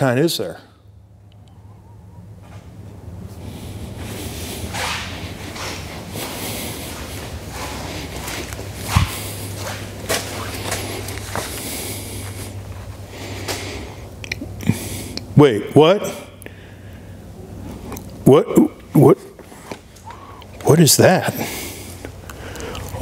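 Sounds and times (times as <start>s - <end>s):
steady low hum: 0.0s - 23.0s
footsteps on hard floor: 4.8s - 11.6s.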